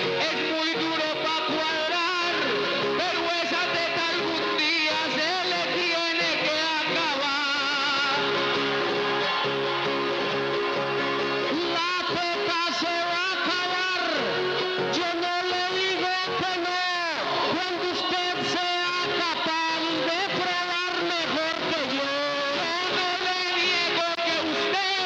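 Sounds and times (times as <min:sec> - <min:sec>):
man singing into a microphone: 0:00.0 - 0:09.5, 0:11.4 - 0:25.0
acoustic guitar: 0:00.0 - 0:25.0.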